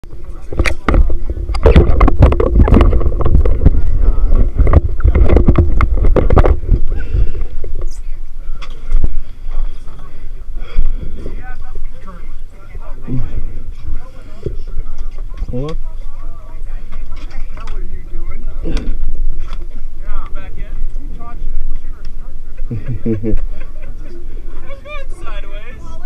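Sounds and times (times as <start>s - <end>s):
low rumble: 0.0s - 14.8s
indistinct voices: 0.0s - 26.0s.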